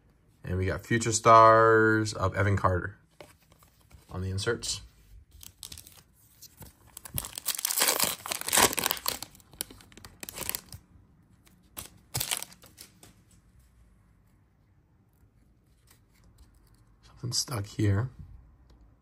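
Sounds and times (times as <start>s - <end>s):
foil wrapper crinkling and tearing: 5.4s - 6.1s, 6.9s - 10.8s, 11.8s - 12.9s.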